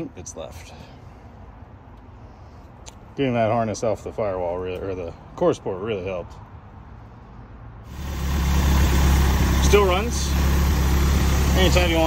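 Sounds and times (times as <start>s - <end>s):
car engine idling: 7.9s - 12.0s.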